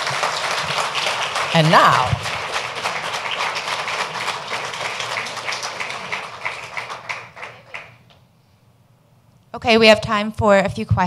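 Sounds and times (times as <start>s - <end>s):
audience applauding: 0.0s - 8.1s.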